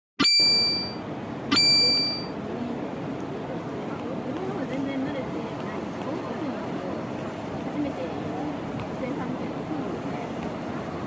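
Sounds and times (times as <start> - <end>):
small bell-like chime: 0.2 - 2.3
low steady background hum: 0.2 - 11.0.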